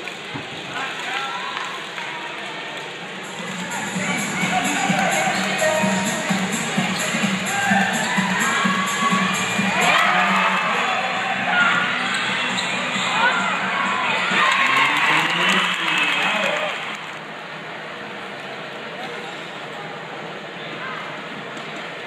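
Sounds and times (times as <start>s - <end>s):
crowd shouting and cheering: 3.3s - 17.2s
players calling: 3.8s - 17.2s.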